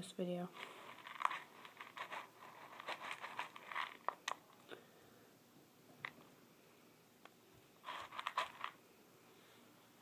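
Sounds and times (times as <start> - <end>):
pebbles rattling in a plastic tub: 0.5 - 4.6, 7.8 - 8.8.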